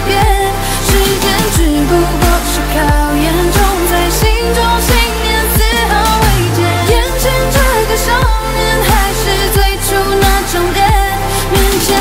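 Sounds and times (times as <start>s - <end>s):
pop song: 0.0s - 12.0s
kick drum beat: 0.2s - 11.8s.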